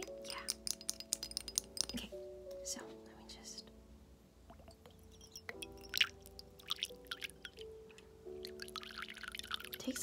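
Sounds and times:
soft background music: 0.0 - 10.0
water pouring into metal cup: 5.2 - 7.7, 8.4 - 10.0.

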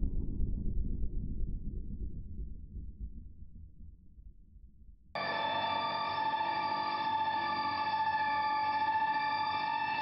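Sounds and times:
dark ambient horror score rumble: 0.0 - 10.0.

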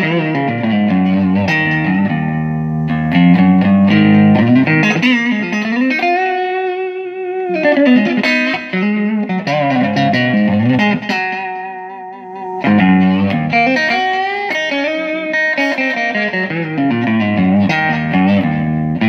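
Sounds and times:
clean electric guitar playing: 0.0 - 19.0.

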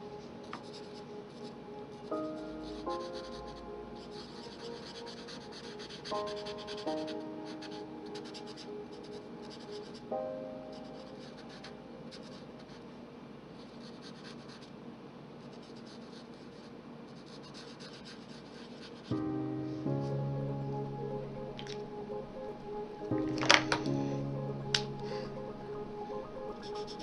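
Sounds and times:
soft background music: 0.0 - 27.0.

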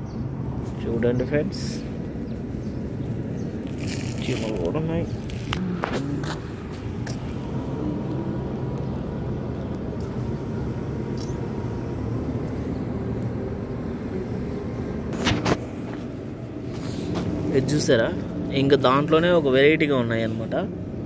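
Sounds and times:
vehicle engine rumbling: 0.0 - 21.0.

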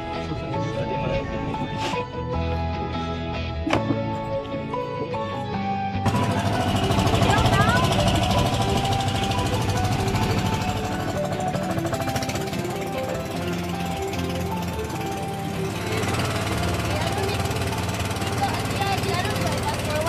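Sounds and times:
background music: 0.0 - 20.0
boat engine running: 0.0 - 20.0.

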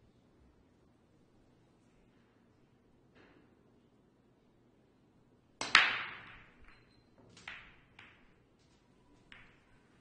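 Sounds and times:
cue ball cracking into balls: 5.6 - 10.0
pool balls clattering: 5.6 - 10.0.

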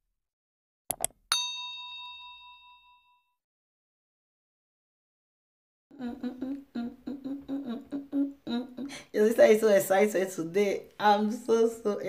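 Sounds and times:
mouse clicks: 0.9 - 1.2
notification bell ding: 1.0 - 3.3.

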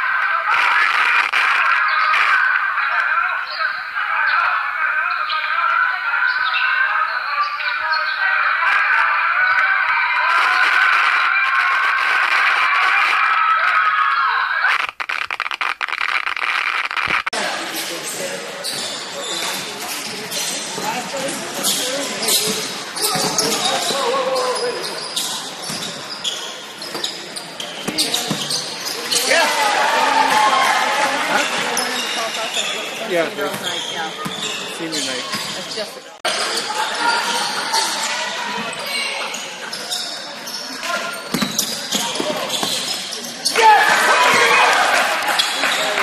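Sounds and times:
crowd noise in a gym: 0.0 - 14.7, 17.3 - 46.0
players' voices echoing: 0.0 - 14.8, 17.4 - 46.0
basketball bouncing on gym floor: 41.3 - 42.9.

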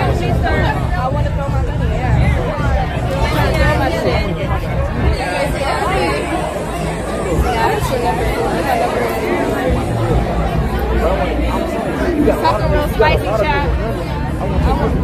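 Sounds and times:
crowd chatter: 0.0 - 15.0
pulsing bass music: 0.0 - 15.0.

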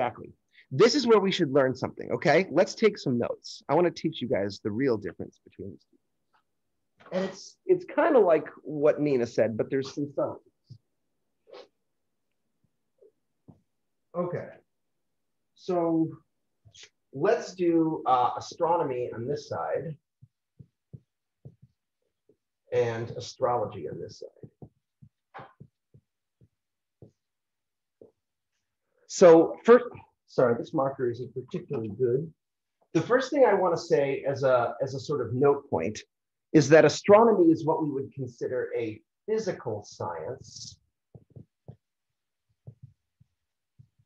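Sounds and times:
marker tapping on whiteboard: 20.0 - 22.4, 24.4 - 27.4, 40.9 - 44.0.

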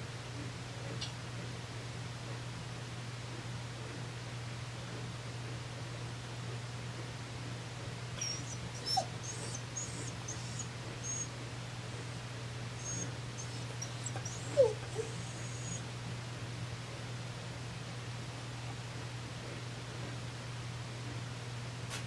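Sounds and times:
dog whining: 8.2 - 11.3, 12.8 - 15.8.

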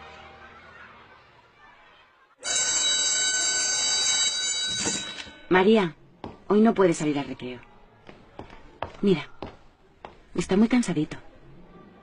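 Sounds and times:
electric school bell ringing: 2.4 - 5.5.

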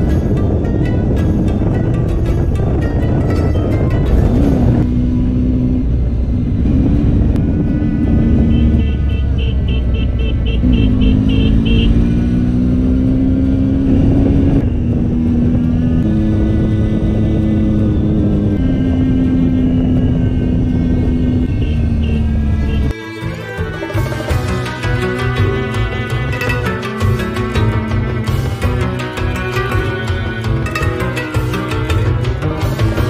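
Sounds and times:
wind rush: 0.0 - 5.2, 5.8 - 8.8, 13.6 - 21.5
background music: 0.0 - 6.2, 10.7 - 33.0
motorcycle engine running: 0.0 - 33.0.

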